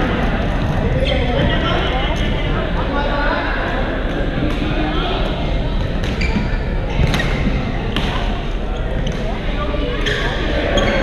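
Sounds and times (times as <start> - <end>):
hubbub of voices: 0.0 - 11.0.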